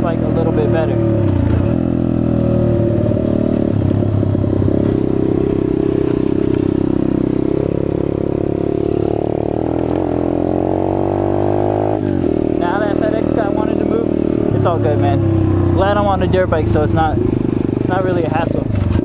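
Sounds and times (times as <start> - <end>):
dirt bike engine accelerating: 0.0 - 19.0.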